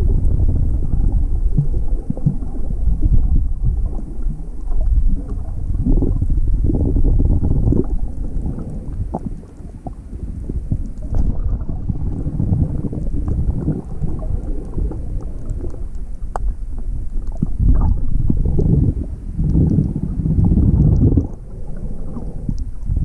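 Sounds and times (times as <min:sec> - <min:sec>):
muffled underwater rumble: 0:00.0 - 0:23.0.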